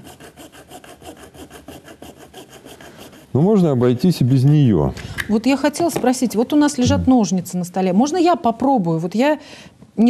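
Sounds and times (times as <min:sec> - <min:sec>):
hacksaw sawing: 0:00.0 - 0:03.4.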